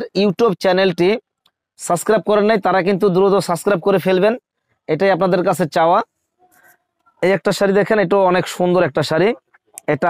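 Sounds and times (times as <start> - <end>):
man speaking: 0.0 - 1.2, 1.8 - 6.1, 7.2 - 10.0.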